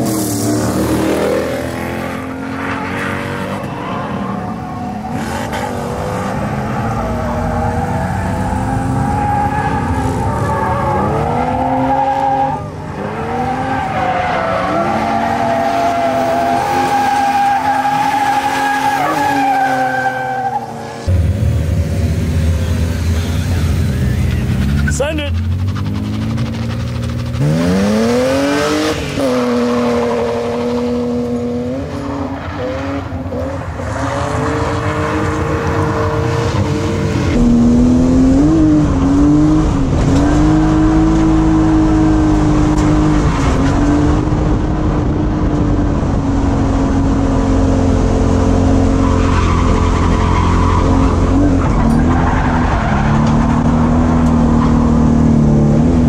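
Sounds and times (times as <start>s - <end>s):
car engine at high revs: 0.0s - 56.0s.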